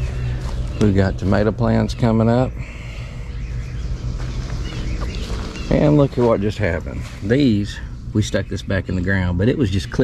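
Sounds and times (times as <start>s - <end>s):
faint bird chirps: 0.0s - 10.0s
steady low rumble: 0.0s - 10.0s.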